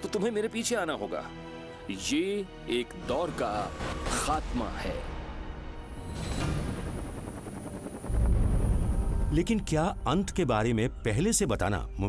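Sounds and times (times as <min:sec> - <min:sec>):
low rumbling drone: 0:05.2 - 0:12.0.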